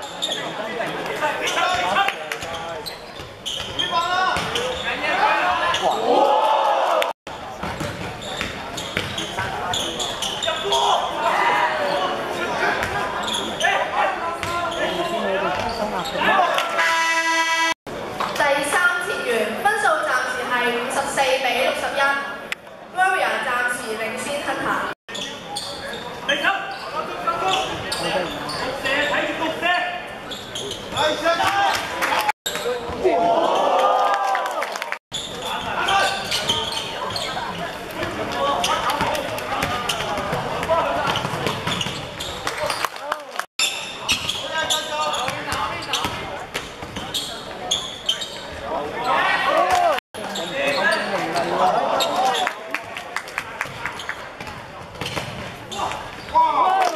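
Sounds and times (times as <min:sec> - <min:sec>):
voices echoing in hall: 0:00.0 - 0:56.9.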